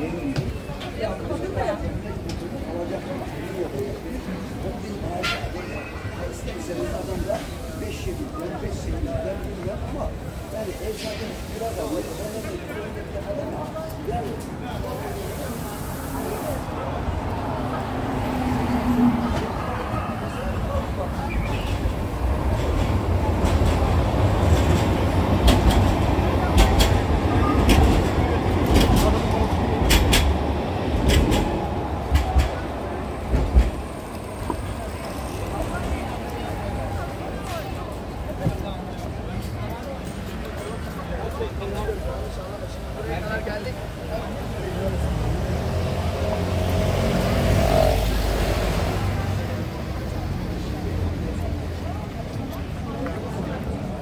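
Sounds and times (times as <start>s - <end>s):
passersby talking: 0.0s - 54.0s
tram rumbling on rails: 0.0s - 54.0s
sharp rail clicks: 22.5s - 35.6s.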